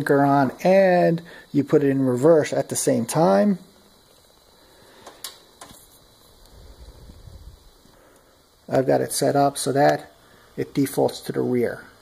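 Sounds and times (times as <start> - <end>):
alligator clips clicking: 5.0 - 5.8.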